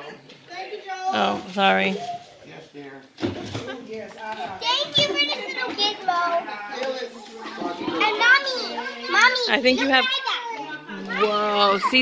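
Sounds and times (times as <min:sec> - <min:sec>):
young child speaking: 0:04.6 - 0:06.5.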